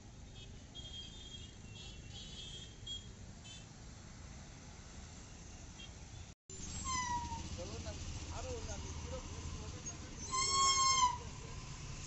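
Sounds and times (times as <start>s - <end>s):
low rumble of traffic engines: 0.0s - 12.0s.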